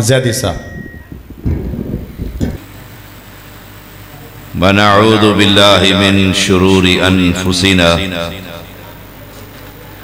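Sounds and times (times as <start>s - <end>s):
steady low hum: 0.0s - 10.0s
microphone handling rumble: 0.6s - 2.8s.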